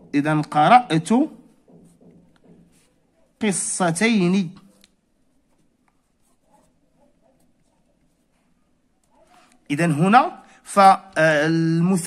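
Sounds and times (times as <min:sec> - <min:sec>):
felt-tip marker scratching on paper: 0:01.8 - 0:03.4, 0:04.7 - 0:09.6.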